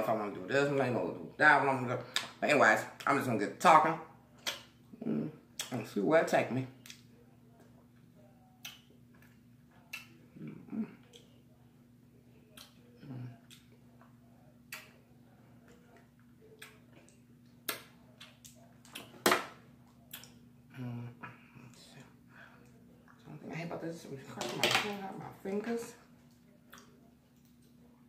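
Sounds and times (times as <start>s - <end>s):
soft eating sounds: 4.2s - 5.9s, 6.6s - 24.4s, 25.3s - 28.0s.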